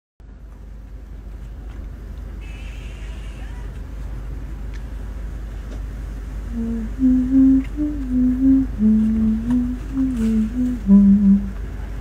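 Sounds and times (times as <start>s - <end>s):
low mechanical rumble: 0.2s - 12.0s.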